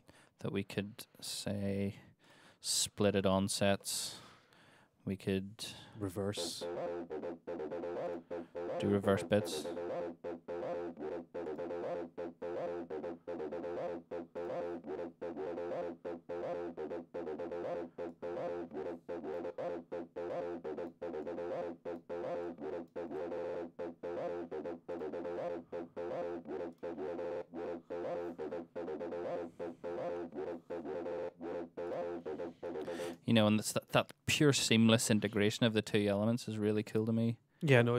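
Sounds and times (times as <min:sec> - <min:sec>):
acid synth line: 0:06.0 - 0:33.4.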